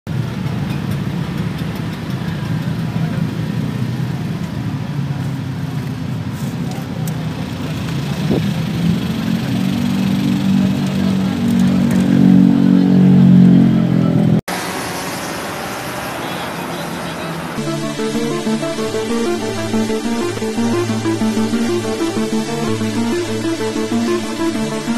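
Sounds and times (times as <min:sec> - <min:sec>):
motor engine humming: 0:17.6 - 0:24.9.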